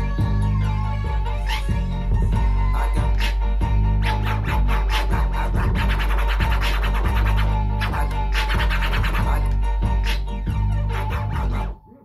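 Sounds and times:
hip hop beat with heavy bass: 0.0s - 12.0s
record scratching: 2.6s - 12.0s.

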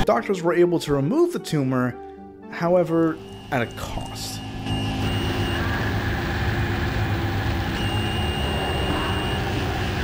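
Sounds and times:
thin high whine: 3.0s - 10.0s
dense rumbling drone: 4.4s - 10.0s.

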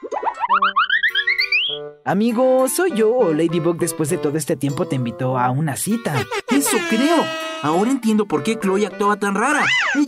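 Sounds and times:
cartoon rising boings: 0.0s - 1.8s
held musical notes: 5.9s - 9.0s.

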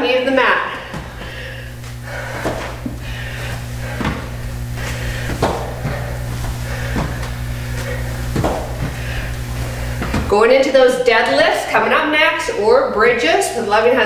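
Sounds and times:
steady low hum: 0.0s - 14.0s
footsteps and knees on foam mats: 0.5s - 10.8s.

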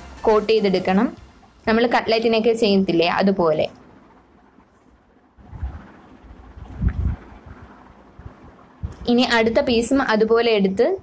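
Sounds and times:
muffled bumps and thumps: 6.6s - 9.1s.

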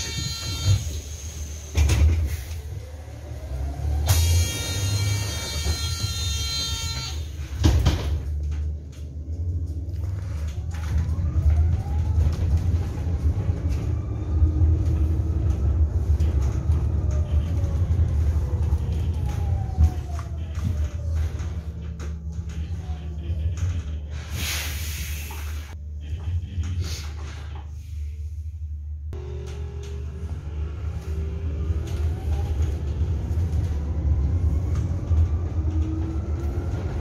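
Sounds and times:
road rumble inside a bus: 0.0s - 37.0s.

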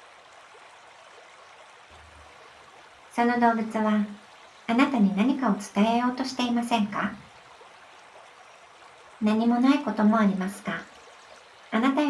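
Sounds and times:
flowing water: 0.0s - 12.0s
woman's voice: 3.2s - 7.2s, 9.2s - 10.9s, 11.8s - 12.0s.

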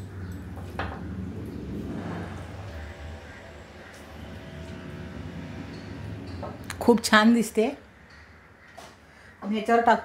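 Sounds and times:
low machine hum: 0.0s - 9.4s.

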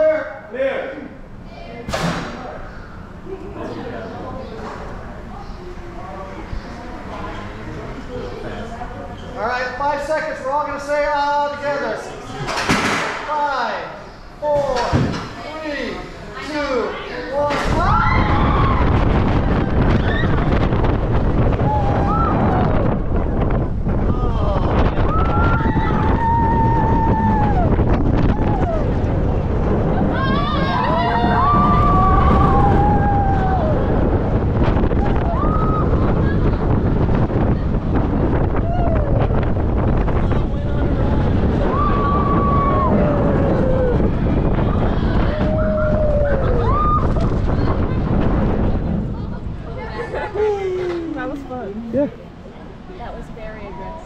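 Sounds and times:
wind noise on microphone: 17.4s - 54.0s
roller coaster train running: 17.7s - 54.0s
riders screaming: 30.0s - 34.0s.

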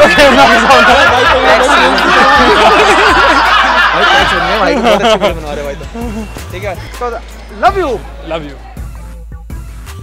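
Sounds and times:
men laughing: 0.0s - 6.9s
men talking loudly: 0.0s - 8.9s.

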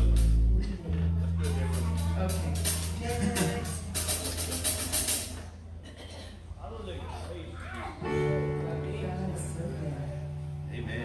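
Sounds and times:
live band music: 0.0s - 5.5s
quick percussion strokes: 1.4s - 5.6s.

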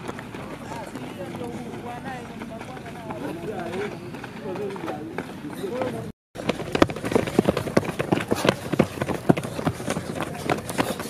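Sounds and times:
footsteps on dirt track: 0.0s - 11.0s
men talking: 0.4s - 6.1s.

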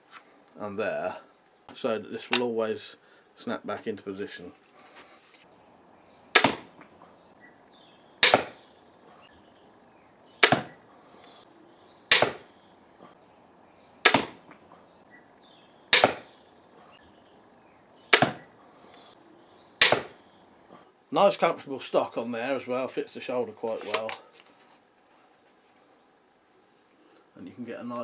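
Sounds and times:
crossbow shots: 6.3s - 6.9s, 8.2s - 8.6s, 10.4s - 10.8s, 12.1s - 12.5s, 14.0s - 14.5s, 15.9s - 16.3s, 18.1s - 18.5s, 19.8s - 20.2s.

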